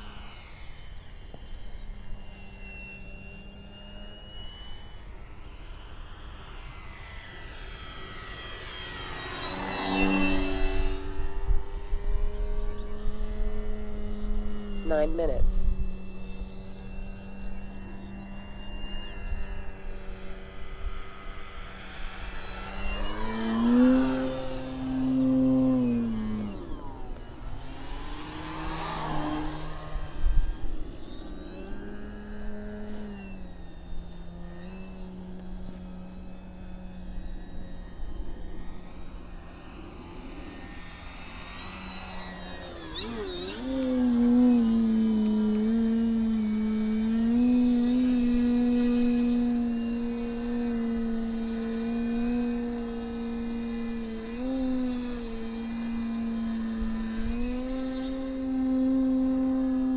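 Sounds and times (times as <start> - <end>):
model plane motor humming: 0.0 - 59.9
plane passing rushing sweep: 0.0 - 59.9.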